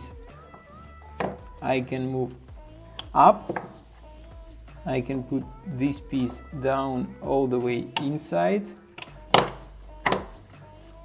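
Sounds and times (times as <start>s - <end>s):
wooden blocks knocking on tray: 0.5s - 1.5s, 3.4s - 3.8s, 9.3s - 10.4s.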